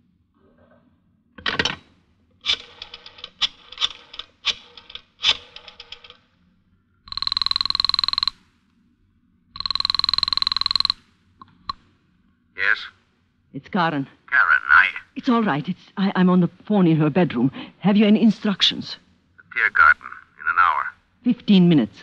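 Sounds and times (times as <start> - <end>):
telephone bell ringing: 7.1 - 8.4, 9.6 - 11.0.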